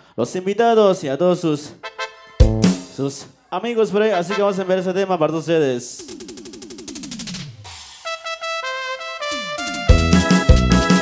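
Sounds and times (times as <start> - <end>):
band with bass and drums: 2.4 - 3.0, 9.6 - 11.0.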